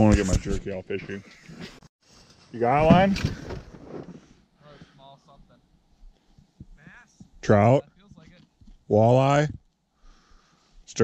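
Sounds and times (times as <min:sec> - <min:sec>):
man speaking: 0:06.7 - 0:09.7.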